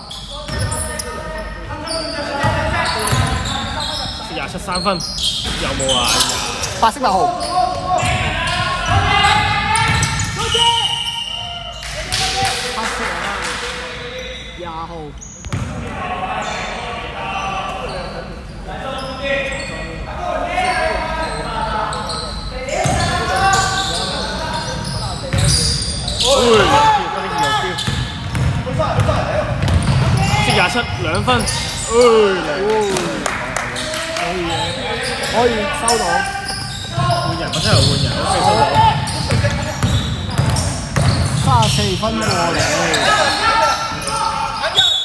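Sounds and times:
shoe squeals: 0:00.0 - 0:12.4, 0:13.9 - 0:32.4, 0:33.7 - 0:45.0
players calling out: 0:00.0 - 0:18.4, 0:19.0 - 0:45.0
basketball bouncing: 0:27.8 - 0:30.2, 0:38.9 - 0:41.7.

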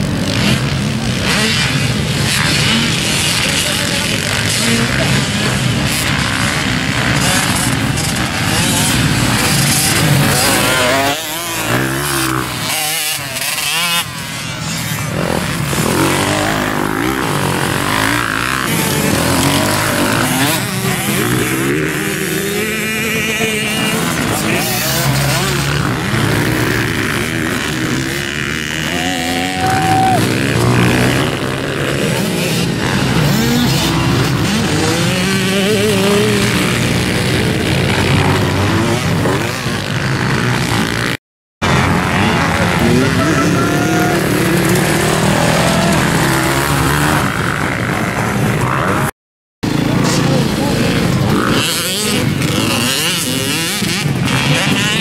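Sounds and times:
motocross bike engines revving: 0:00.0 - 0:55.0.

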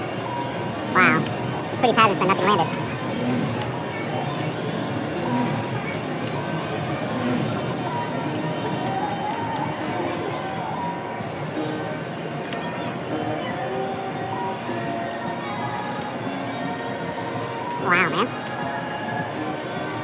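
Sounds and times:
background murmur: 0:00.0 - 0:20.0.

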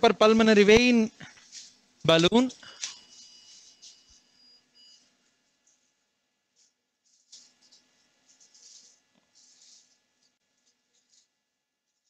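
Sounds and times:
soft rustle: 0:01.2 - 0:01.9, 0:05.6 - 0:12.0
faint electronic beeps: 0:02.5 - 0:05.3.

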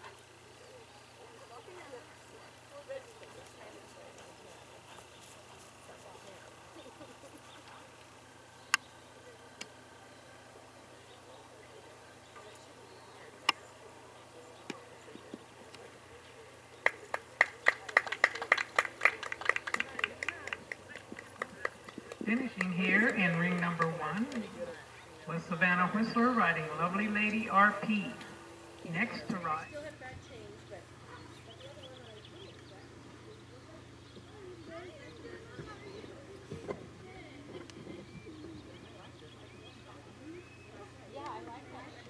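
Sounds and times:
spectators clapping: 0:16.8 - 0:24.8.

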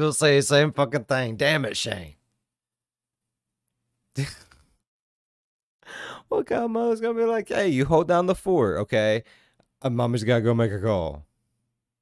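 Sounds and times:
person exhaling: 0:05.8 - 0:06.3.

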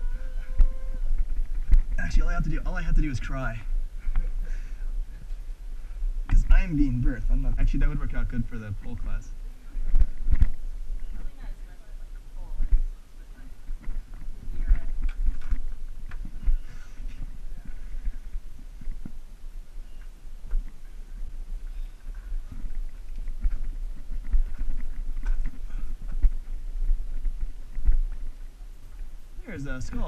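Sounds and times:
low camera handling rumble: 0:09.8 - 0:11.2, 0:13.7 - 0:19.3, 0:22.0 - 0:29.1.

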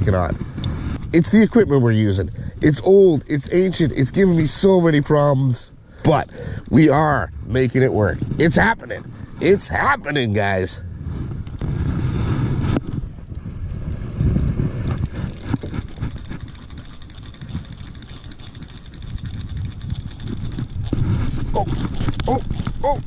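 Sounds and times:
low rumble: 0:06.3 - 0:09.4
reel gears clicking: 0:14.9 - 0:23.0.

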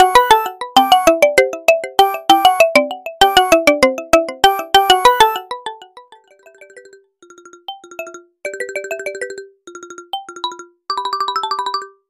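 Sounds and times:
ringtone melody: 0:00.0 - 0:12.0.

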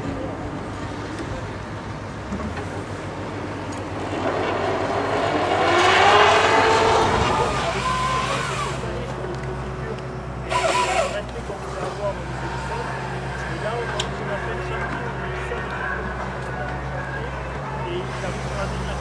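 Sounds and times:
excavator diesel engine: 0:00.0 - 0:19.0.

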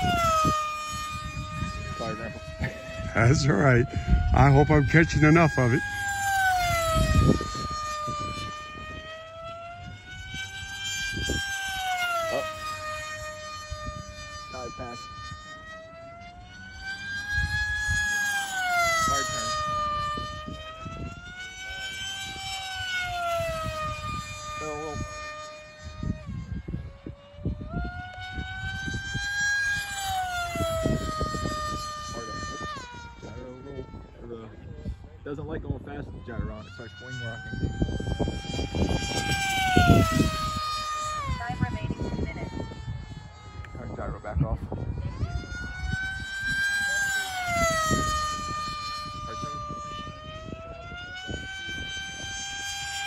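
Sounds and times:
model jet motor whine: 0:00.0 - 0:53.0.

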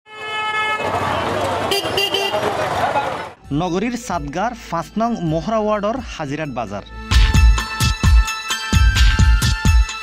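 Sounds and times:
vehicle horn: 0:00.1 - 0:03.3
street traffic noise: 0:00.1 - 0:06.1.

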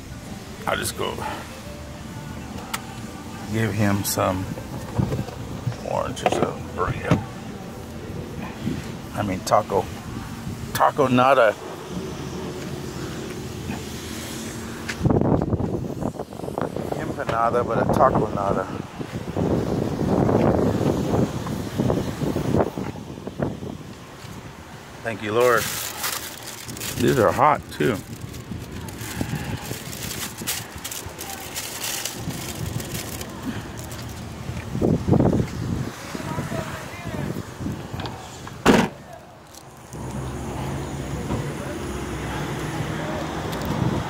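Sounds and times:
car engine humming: 0:00.0 - 0:44.0
wind rumble on microphone: 0:14.8 - 0:24.6, 0:26.6 - 0:31.0, 0:32.1 - 0:38.2, 0:43.2 - 0:44.0.

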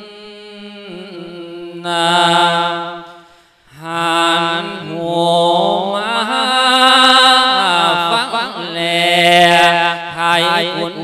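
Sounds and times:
person chanting into microphone: 0:00.0 - 0:11.0.

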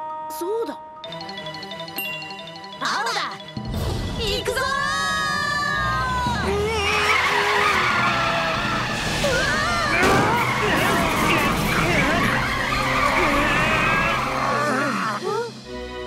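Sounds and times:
children crying out: 0:05.1 - 0:15.4
tyres screeching in a skid: 0:06.2 - 0:14.6.

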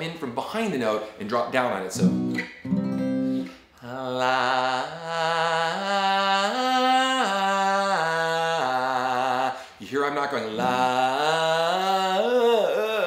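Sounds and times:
acoustic guitar: 0:01.9 - 0:03.8, 0:10.5 - 0:11.4.

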